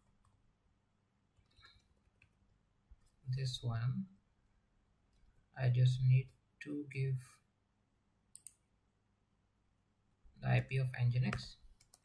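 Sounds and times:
computer mouse clicks: 8.3s - 8.6s, 11.2s - 12.0s.

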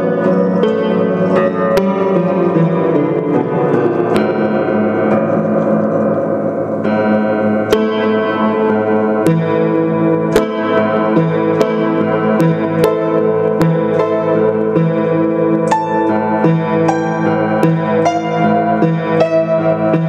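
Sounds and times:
hard-struck piano notes: 0.0s - 20.0s
upright piano played freely: 0.0s - 20.0s.

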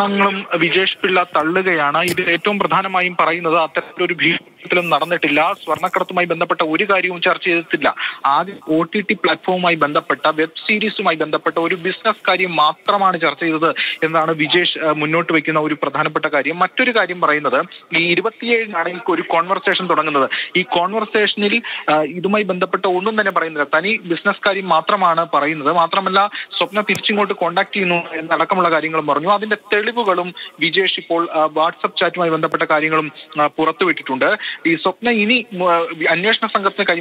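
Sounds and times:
person talking: 0.0s - 37.0s.

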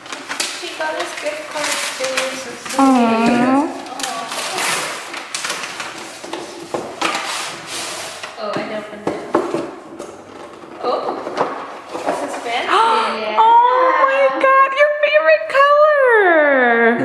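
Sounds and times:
tissue paper rustling: 0.0s - 8.3s.

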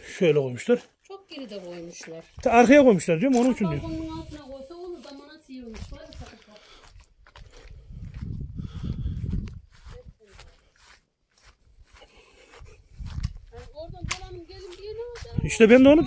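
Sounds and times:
low rumbling on microphone: 7.7s - 9.8s.

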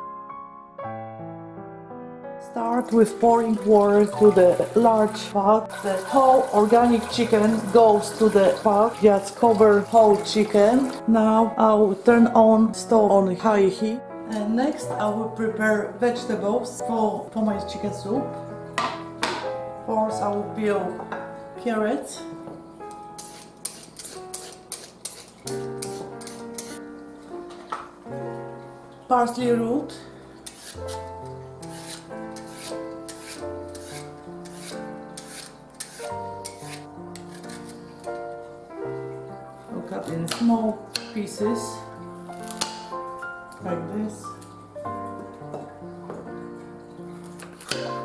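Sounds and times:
background music: 0.0s - 48.0s
vegetable peeler scraping carrot: 23.2s - 26.8s, 30.4s - 37.9s.

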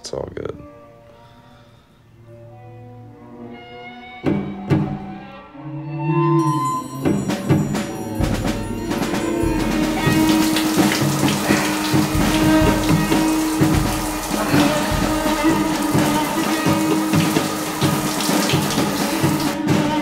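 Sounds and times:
low musical drone: 5.4s - 19.6s
shower spray running: 6.4s - 20.0s
low thuds: 7.1s - 19.5s.

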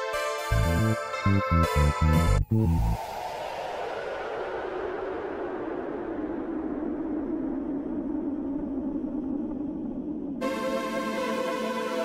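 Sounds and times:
hissing synthesizer noise wash: 0.5s - 12.0s.

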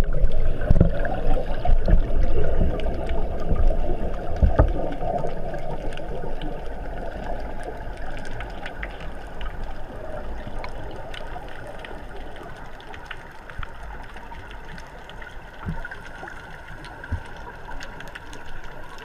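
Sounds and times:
underwater rush of water and bubbles: 0.0s - 19.0s
faint ticks: 4.4s - 19.0s.

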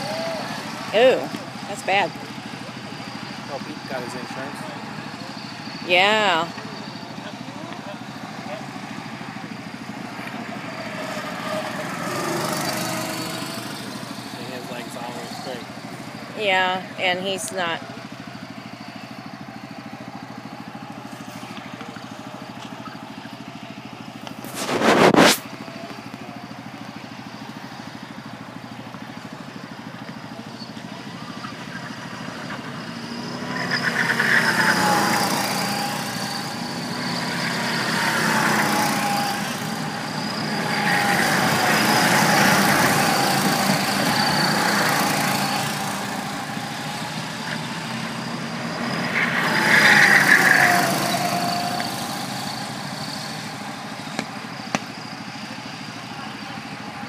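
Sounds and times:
go-kart engines passing by: 0.0s - 57.0s.

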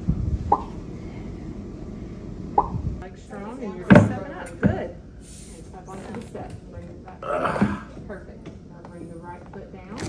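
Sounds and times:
man grunting with effort: 7.2s - 7.9s.

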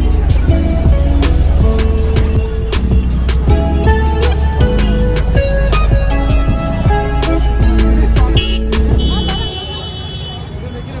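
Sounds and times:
many people talking: 0.0s - 11.0s
road traffic: 0.0s - 11.0s.

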